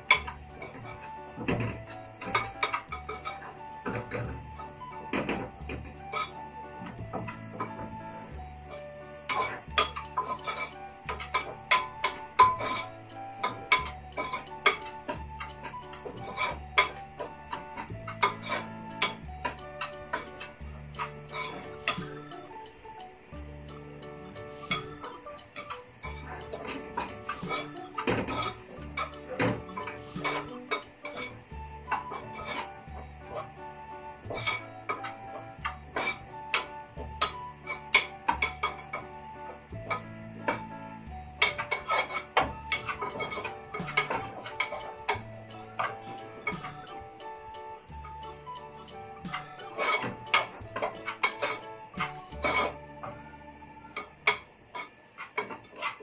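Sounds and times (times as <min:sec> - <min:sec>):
metal spoon scraping a saucepan: 0:00.0 - 0:22.5, 0:24.3 - 0:39.1, 0:39.8 - 0:47.0, 0:48.6 - 0:53.2, 0:53.9 - 0:56.0
background music: 0:00.0 - 0:56.0.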